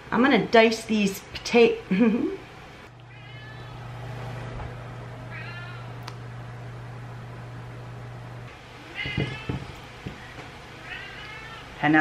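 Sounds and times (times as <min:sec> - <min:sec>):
steady low hum: 0:01.4 - 0:11.8
cat meowing: 0:03.0 - 0:04.0, 0:05.3 - 0:06.0, 0:08.8 - 0:11.8.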